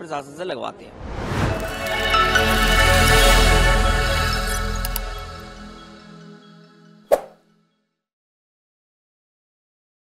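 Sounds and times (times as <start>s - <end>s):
outro music: 0.9s - 7.1s
short pop sound effect: 7.1s - 7.4s.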